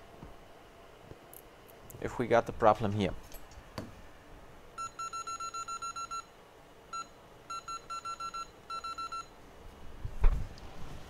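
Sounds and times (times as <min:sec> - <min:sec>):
short electronic key beeps: 0:04.8 - 0:06.3, 0:07.0 - 0:09.3.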